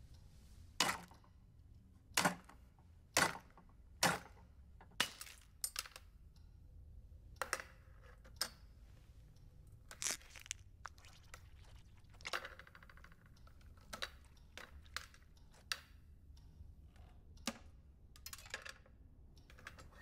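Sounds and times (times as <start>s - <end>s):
spoon cracking eggshell: 9.9s - 12.5s.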